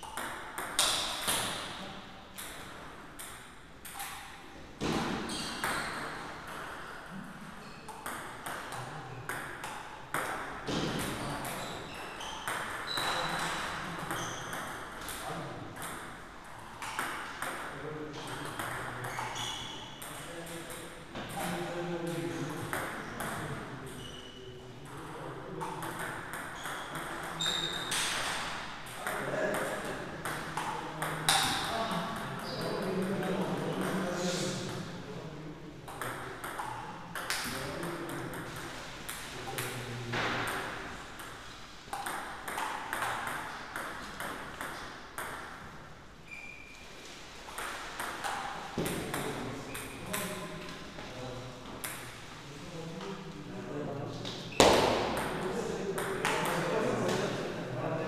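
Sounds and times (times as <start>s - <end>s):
ball bouncing on table: 0.0s - 1.7s, 2.4s - 6.8s, 7.9s - 16.2s, 16.8s - 21.6s, 22.7s - 24.2s, 25.6s - 32.9s, 35.9s - 45.7s, 47.5s - 50.4s, 54.5s - 57.2s.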